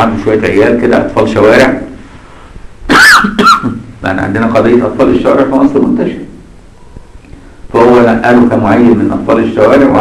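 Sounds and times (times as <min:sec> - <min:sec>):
loud coughs: 0:02.9 - 0:03.8.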